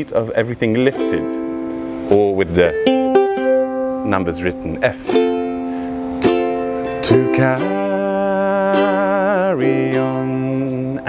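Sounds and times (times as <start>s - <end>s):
ukulele strummed: 0.7s - 11.0s.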